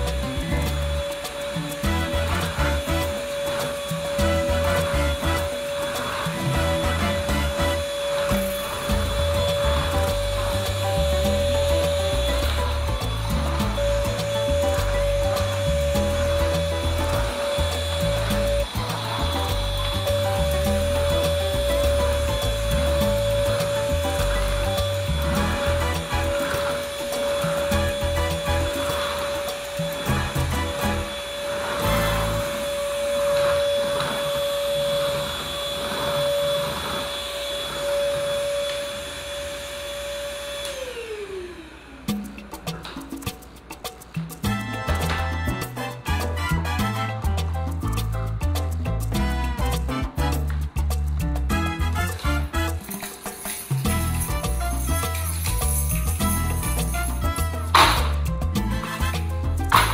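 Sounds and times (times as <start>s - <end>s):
vacuum cleaner motor whine: 0.0s - 42.8s
vacuum motor spinning down: 0.0s - 42.8s.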